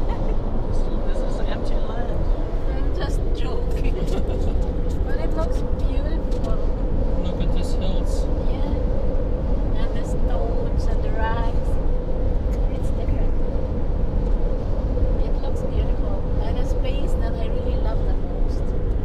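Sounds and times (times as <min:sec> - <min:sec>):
truck road and engine noise: 0:00.0 - 0:19.0.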